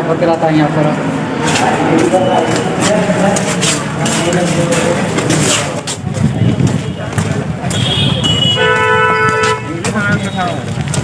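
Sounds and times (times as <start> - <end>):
voices chattering: 0.0 - 11.0
vehicle horn honk: 7.7 - 10.6.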